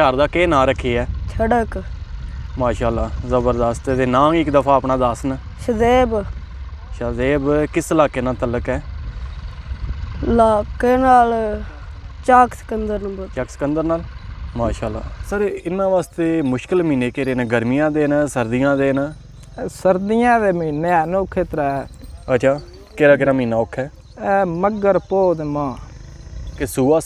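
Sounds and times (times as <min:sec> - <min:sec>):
steady low rumble: 0:00.0 - 0:27.0
voices speaking: 0:00.0 - 0:27.0.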